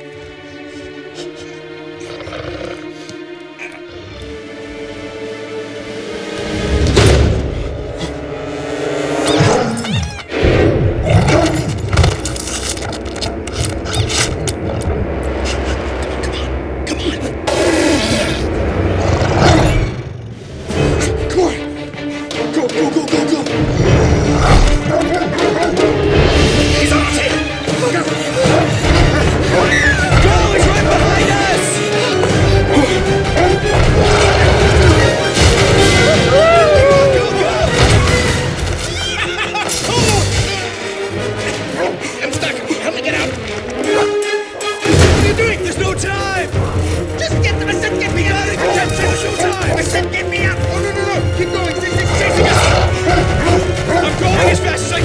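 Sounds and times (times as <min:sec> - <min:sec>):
tense orchestral score: 0:00.0 - 0:55.0.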